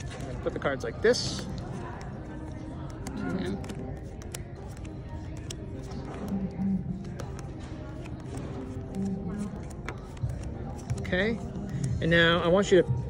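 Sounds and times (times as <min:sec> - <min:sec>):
background music: 0:00.0 - 0:13.0
nearby chatter: 0:00.2 - 0:12.7.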